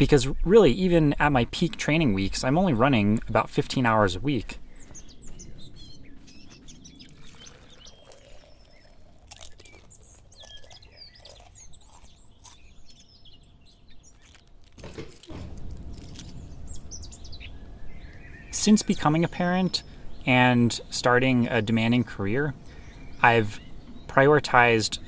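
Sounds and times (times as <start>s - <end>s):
birds chirping: 0.0s - 25.0s.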